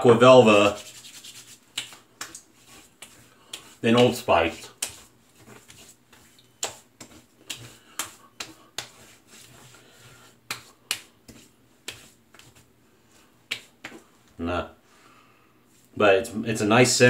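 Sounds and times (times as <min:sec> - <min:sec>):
hands slapping skin: 0:00.6 - 0:14.1.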